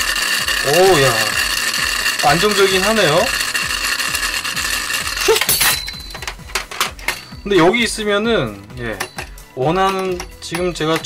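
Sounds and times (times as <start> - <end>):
spinning top clicks: 0.0 - 7.4
spinning top whirring: 0.0 - 11.0.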